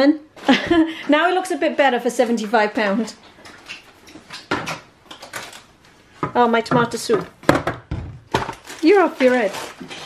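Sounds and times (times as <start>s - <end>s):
bags rustling: 8.3s - 10.0s.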